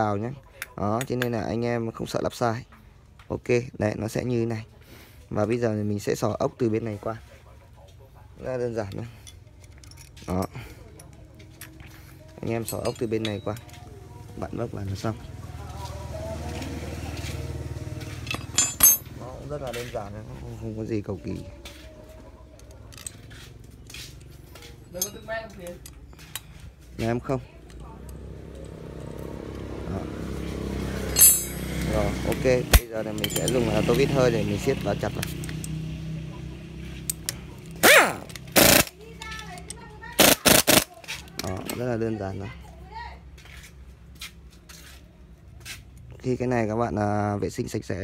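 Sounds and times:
metal parts scraping and rustling: 0:08.8 - 0:13.8, 0:18.0 - 0:19.9, 0:22.6 - 0:29.2, 0:31.0 - 0:32.1, 0:32.7 - 0:35.7, 0:36.9 - 0:41.9.

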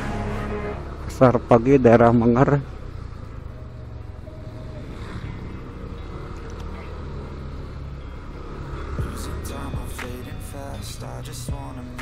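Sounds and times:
scooter engine running: 0:00.0 - 0:11.7.

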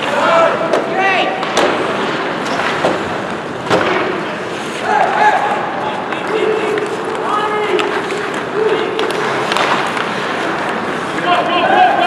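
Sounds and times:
people shouting: 0:00.0 - 0:01.4, 0:04.8 - 0:07.9, 0:11.2 - 0:12.0
hockey sticks and puck clacking: 0:00.0 - 0:12.0
skates scraping ice: 0:00.0 - 0:12.0.

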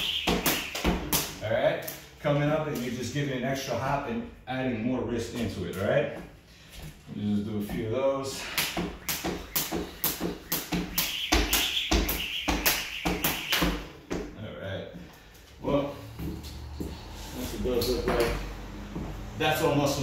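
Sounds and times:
skipping rope slapping floor: 0:00.0 - 0:01.4, 0:08.4 - 0:13.9.

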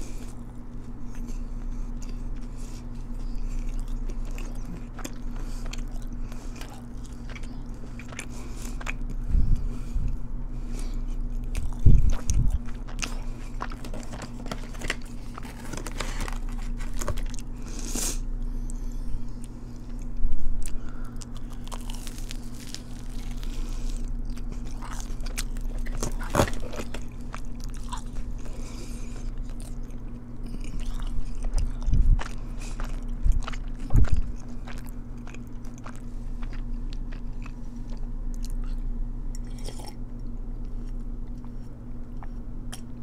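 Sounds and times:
crunchy chewing: 0:00.0 - 0:43.0.

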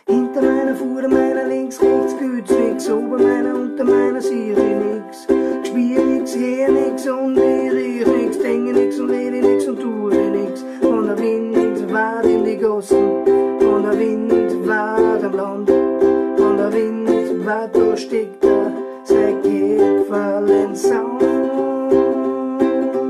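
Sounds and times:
ukulele strumming: 0:00.0 - 0:23.0.

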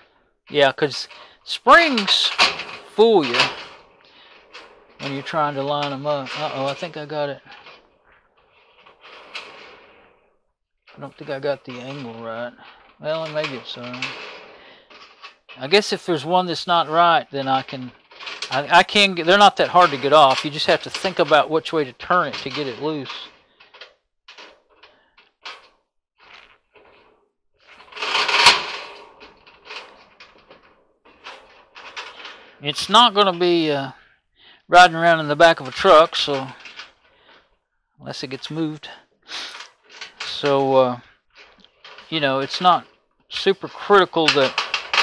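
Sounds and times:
wire coil scraping sheet metal: 0:00.6 - 0:10.2, 0:10.9 - 0:27.0, 0:27.7 - 0:33.9, 0:34.7 - 0:37.4, 0:38.1 - 0:45.0.

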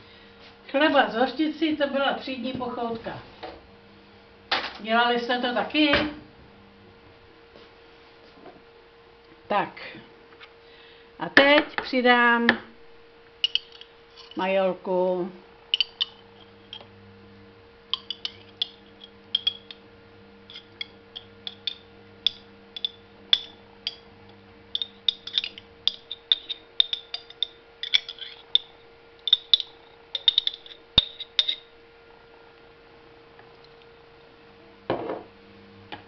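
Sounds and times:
spoon scraping inside glass jar: 0:15.8 - 0:16.8, 0:20.5 - 0:21.8, 0:24.8 - 0:28.7, 0:29.3 - 0:31.7.

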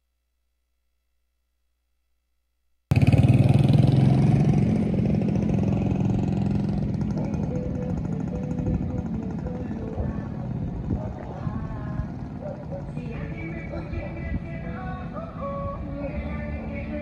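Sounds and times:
motorcycle engine running: 0:02.9 - 0:17.0.

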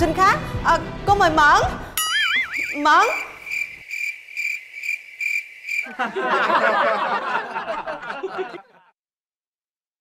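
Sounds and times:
cricket chirps: 0:02.2 - 0:06.1
laughter: 0:05.8 - 0:09.0.

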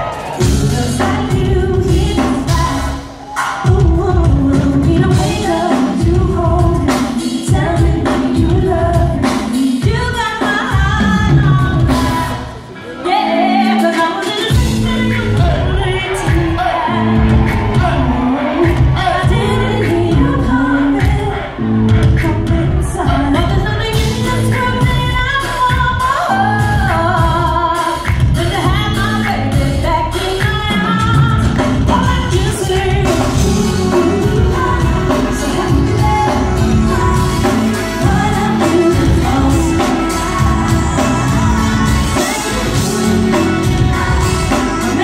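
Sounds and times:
band with heavy bass and drums: 0:00.0 - 0:12.8, 0:13.6 - 0:45.0
female singer singing: 0:00.0 - 0:45.0.

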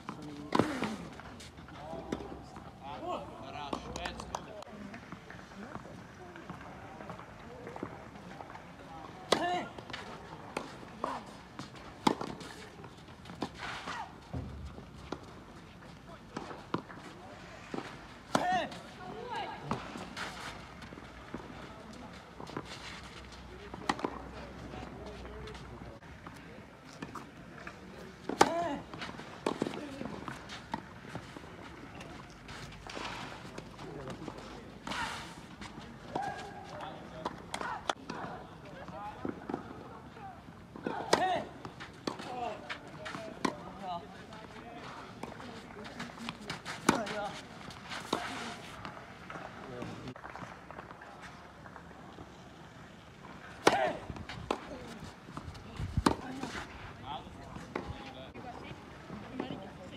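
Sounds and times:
rackets hitting tennis ball: 0:27.0 - 0:39.7, 0:40.8 - 0:51.9, 0:53.2 - 0:58.1.

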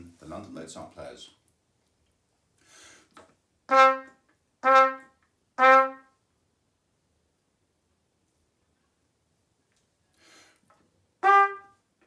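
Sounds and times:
trumpet playing short notes: 0:03.7 - 0:06.1, 0:11.2 - 0:11.9.

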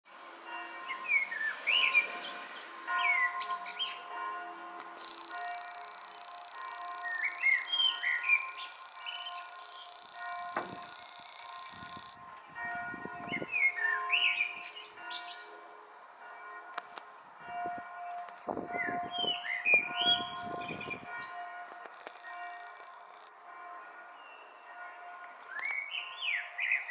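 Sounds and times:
distant church bells ringing: 0:00.1 - 0:26.9
songbird whistling: 0:07.0 - 0:10.0, 0:18.8 - 0:20.9, 0:25.5 - 0:26.9.

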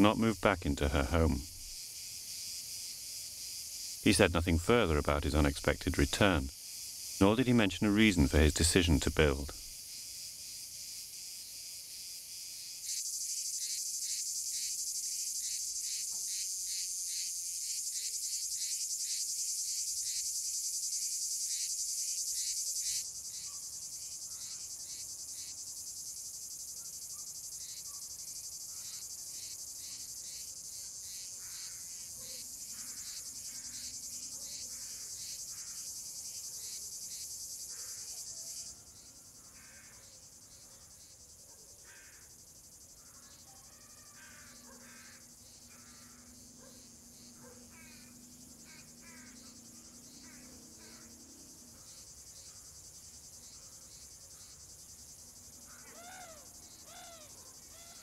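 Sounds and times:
high-pitched insect chorus: 0:00.0 - 0:58.0.

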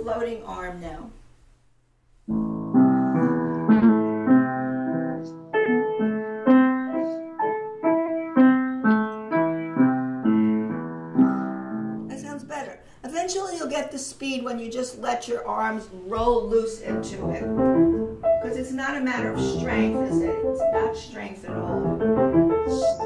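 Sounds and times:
upright piano single notes: 0:02.3 - 0:12.1, 0:16.3 - 0:23.0.

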